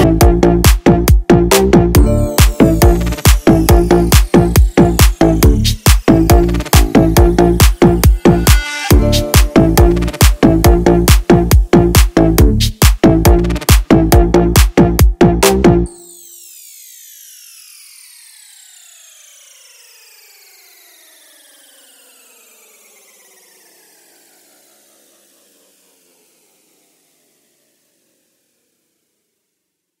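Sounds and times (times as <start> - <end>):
synth tones sliding down in pitch: 2.0 - 11.2, 15.9 - 28.1.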